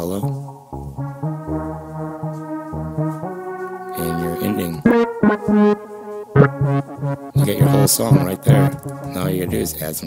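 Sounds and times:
synthesizer melody of held notes: 0.0s - 10.0s
synth bass line: 0.4s - 9.8s.

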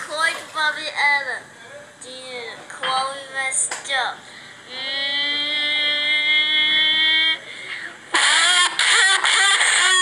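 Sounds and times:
high-pitched vocal sounds: 4.7s - 7.5s, 8.1s - 10.0s.

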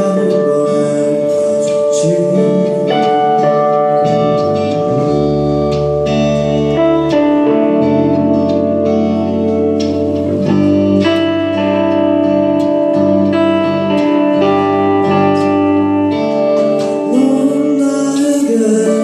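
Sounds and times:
electric guitars playing: 0.0s - 19.0s
low bass line: 0.0s - 19.0s.

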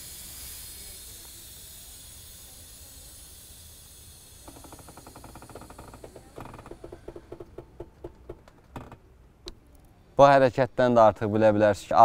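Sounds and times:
air suspension hissing: 0.0s - 9.0s.

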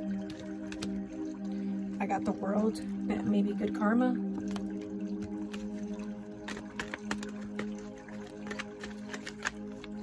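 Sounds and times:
background music of held notes: 0.0s - 10.0s
cards being shuffled: 4.4s - 10.0s.

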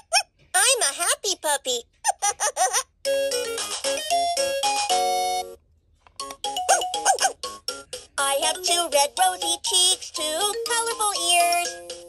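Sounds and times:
toy recorded voice: 0.0s - 3.0s, 6.5s - 11.9s
toy electronic beeping jingle: 6.2s - 8.0s.

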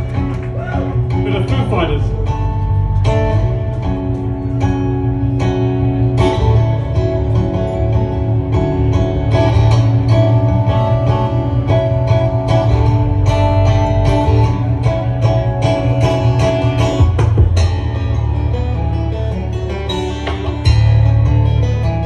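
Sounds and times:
fingerstyle acoustic guitar: 0.0s - 22.0s.

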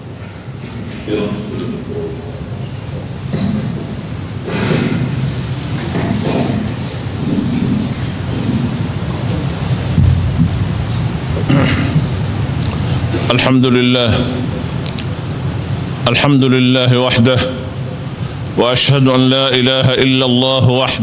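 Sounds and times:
steady low rumble: 0.0s - 21.0s
murmuring voices: 0.6s - 9.6s.

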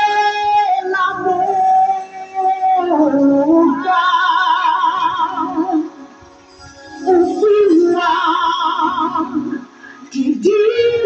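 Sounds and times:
women singing gospel song: 0.0s - 11.0s.

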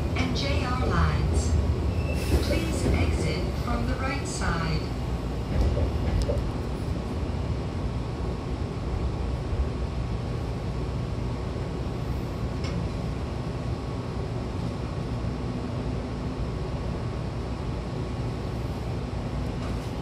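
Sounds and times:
train running rumble: 0.0s - 20.0s.

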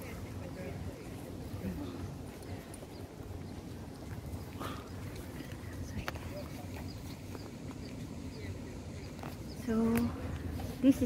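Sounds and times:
distant voices: 0.0s - 11.0s
steady low rumble: 0.0s - 11.0s.

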